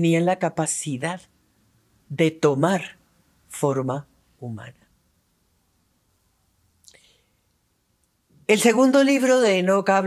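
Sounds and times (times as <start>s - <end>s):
faint breath in: 6.9s - 7.5s.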